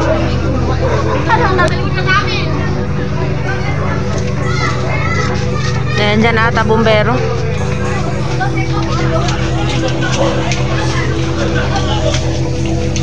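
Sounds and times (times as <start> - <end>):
children's voices: 0.0 - 13.0
people talking and calling out: 0.0 - 13.0
steady low hum: 0.0 - 13.0.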